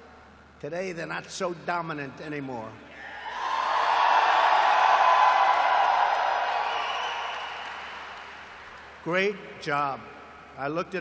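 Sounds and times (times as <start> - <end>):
audience applauding and cheering: 3.1 - 9.0.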